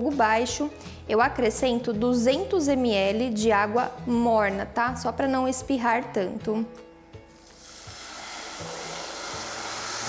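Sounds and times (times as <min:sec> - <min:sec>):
caramel hissing and sizzling in pot: 0:07.3 - 0:10.0
water pouring: 0:07.4 - 0:10.0.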